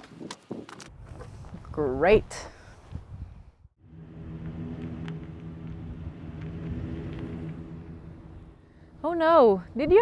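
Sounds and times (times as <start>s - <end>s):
van engine running low hum: 3.8s - 9.2s.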